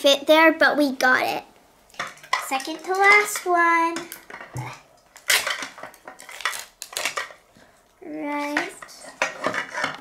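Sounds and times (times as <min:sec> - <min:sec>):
plastic parts clicking and clattering: 0:01.9 - 0:07.4
small wrapper rustling: 0:05.1 - 0:07.5.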